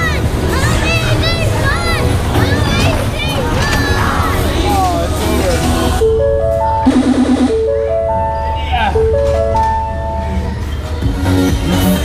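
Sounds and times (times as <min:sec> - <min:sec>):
electronic jingle over loudspeakers: 0:06.0 - 0:10.6.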